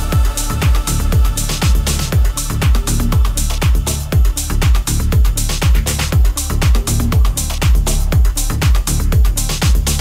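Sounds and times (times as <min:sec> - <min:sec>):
bass line: 0:00.0 - 0:10.0
hi-hat: 0:00.0 - 0:10.0
kick drum beat: 0:00.0 - 0:10.0.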